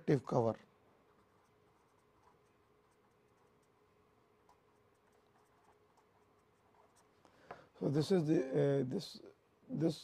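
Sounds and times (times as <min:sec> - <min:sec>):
man talking: 0:00.0 - 0:00.6, 0:07.8 - 0:10.0
marker pen writing on paper: 0:01.0 - 0:07.6.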